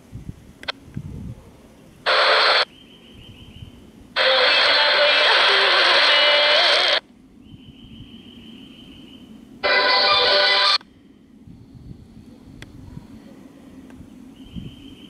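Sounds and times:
radio broadcast audio: 2.0 - 2.7, 4.2 - 7.0, 9.6 - 10.8
faint radio whistle: 14.3 - 15.0.

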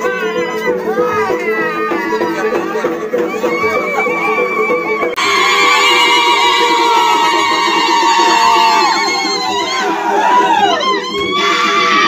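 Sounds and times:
crowd high-pitched voices: 0.0 - 12.0.

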